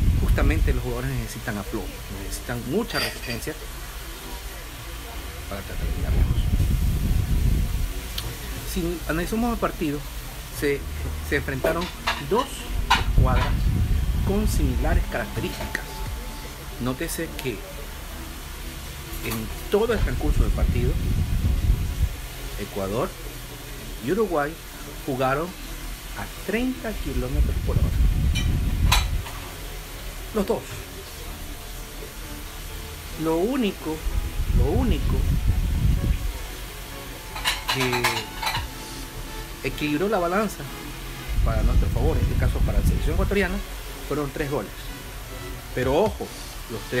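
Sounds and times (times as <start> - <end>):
people talking: 0.2 - 3.6, 4.3 - 6.6, 8.2 - 13.6, 14.2 - 18.0, 19.2 - 21.1, 26.2 - 28.0, 34.6 - 35.4, 37.7 - 39.0, 41.4 - 44.8, 45.8 - 47.0
low uneven rumble: 12.6 - 16.8, 19.9 - 22.6.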